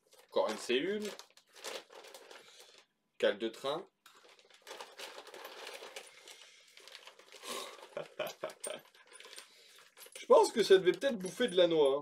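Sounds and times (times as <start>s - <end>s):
plastic bags rustling: 0.0s - 2.9s, 3.6s - 12.0s
small parts clinking: 8.3s - 12.0s.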